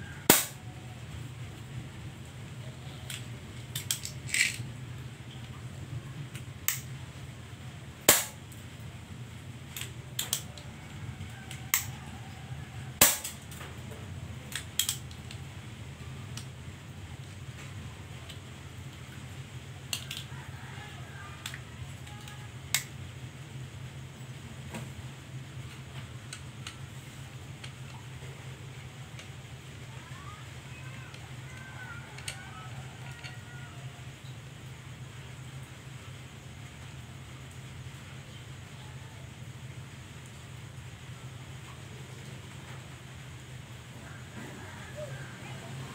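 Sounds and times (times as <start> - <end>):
air rifle sharp cracks: 0.3 - 0.6, 8.1 - 8.4, 13.0 - 13.4.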